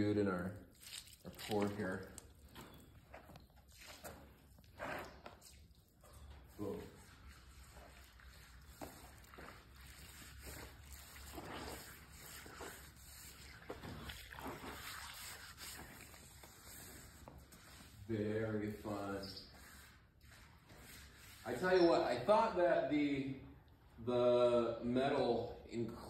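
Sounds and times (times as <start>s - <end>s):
water splashing onto wood: 0.6s - 2.7s, 6.6s - 16.7s
hand wiping wet wood: 3.1s - 22.5s.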